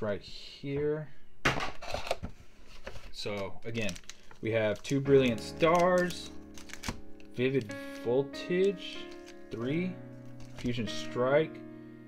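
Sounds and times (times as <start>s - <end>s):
foil wrappers crinkling: 2.6s - 11.1s.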